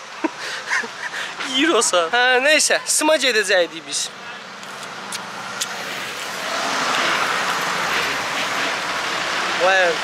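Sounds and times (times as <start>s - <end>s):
road vehicle passing: 0.0s - 10.0s.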